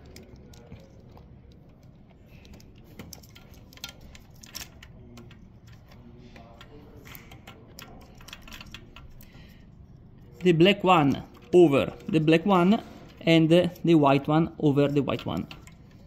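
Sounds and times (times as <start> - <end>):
wires and connectors clicking: 0.0 - 16.0.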